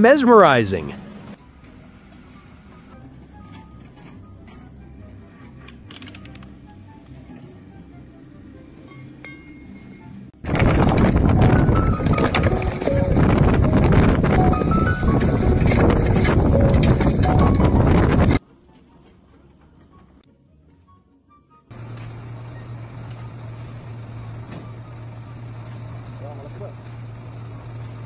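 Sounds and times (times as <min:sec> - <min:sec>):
soft background music: 0:01.4 - 0:10.3, 0:11.4 - 0:22.6.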